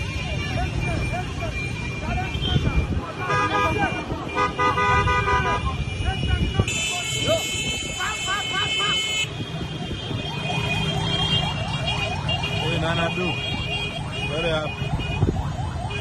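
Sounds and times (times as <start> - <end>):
crowd voices: 0.0 - 14.7
motorbike and car engines: 0.0 - 16.0.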